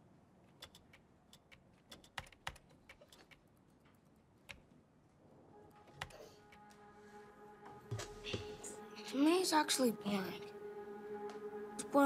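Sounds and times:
laptop keyboard clicks: 0.5s - 4.7s.

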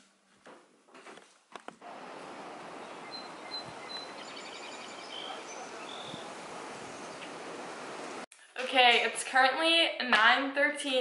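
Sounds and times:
steady background hiss: 1.8s - 8.3s
bird chirps: 2.1s - 7.5s.

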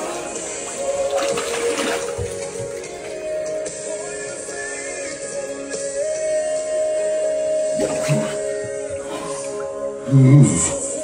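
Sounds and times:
water splashing in metal tub: 0.0s - 3.8s, 7.6s - 9.6s
background music: 0.0s - 11.0s.

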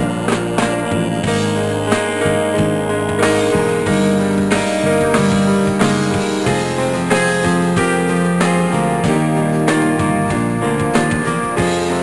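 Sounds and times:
held keyboard chords: 0.0s - 12.0s
steady drum beat: 0.0s - 12.0s
strummed guitar: 0.0s - 12.0s.

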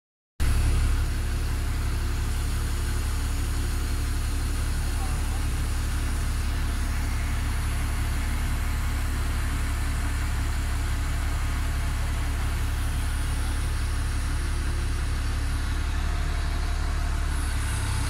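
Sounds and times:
low mechanical drone: 0.4s - 18.0s.

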